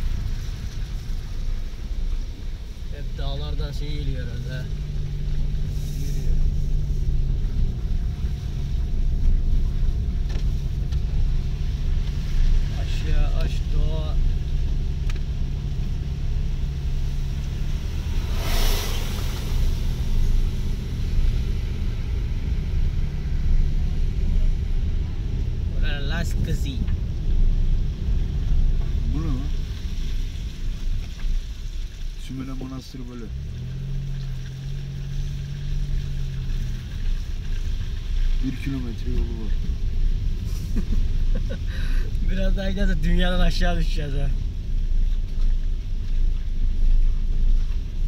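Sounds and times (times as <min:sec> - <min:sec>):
car engine hum: 0:00.0 - 0:48.0
tyres rumbling on dirt: 0:00.0 - 0:48.0
short rush of noise: 0:17.8 - 0:22.0.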